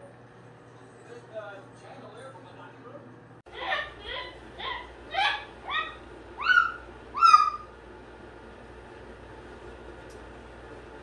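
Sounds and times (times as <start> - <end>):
cockatoo calling: 3.5 - 7.8.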